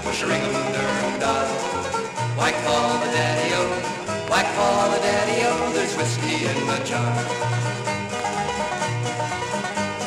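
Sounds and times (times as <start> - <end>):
bass line: 0.0 - 10.0
plucked strings: 0.0 - 10.0.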